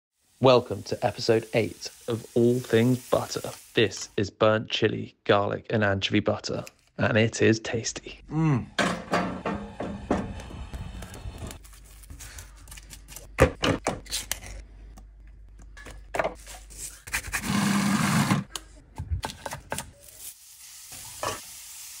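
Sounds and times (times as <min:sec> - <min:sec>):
butter sizzling in a frying pan: 0:00.2 - 0:04.2, 0:20.1 - 0:22.0
utensils knocking and clattering: 0:08.8 - 0:10.5
food processor whirring: 0:17.4 - 0:18.4.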